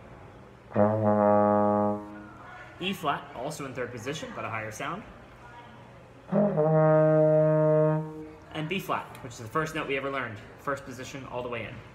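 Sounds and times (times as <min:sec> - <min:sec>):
trombone holding a note: 0:00.7 - 0:02.3, 0:06.3 - 0:08.4.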